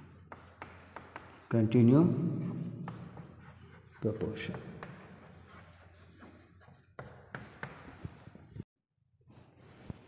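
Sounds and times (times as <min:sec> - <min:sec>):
chalk scratching on chalkboard: 0:00.0 - 0:08.3
chalk tapping: 0:00.0 - 0:08.3
person speaking: 0:03.8 - 0:05.0.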